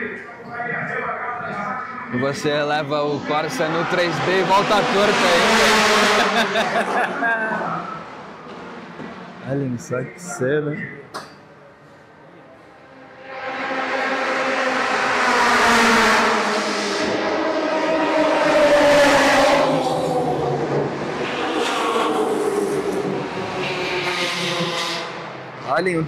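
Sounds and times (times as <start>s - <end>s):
race car engines passing: 0.0s - 11.0s, 12.1s - 26.0s.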